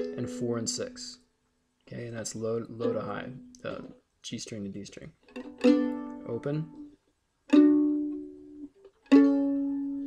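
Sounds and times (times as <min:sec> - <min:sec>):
mandolin chord plucked: 0:00.0 - 0:00.9, 0:02.4 - 0:03.9, 0:05.3 - 0:06.9, 0:07.5 - 0:10.0.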